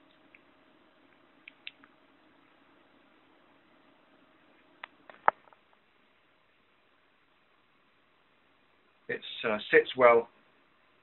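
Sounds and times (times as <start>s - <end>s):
computer fan hum: 0.0s - 11.0s
wet lip smacks: 1.4s - 1.9s.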